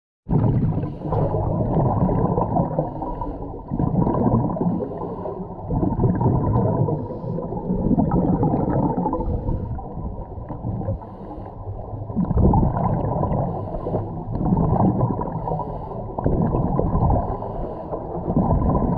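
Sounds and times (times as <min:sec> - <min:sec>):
regulator bubbles underwater: 0:00.3 - 0:18.9.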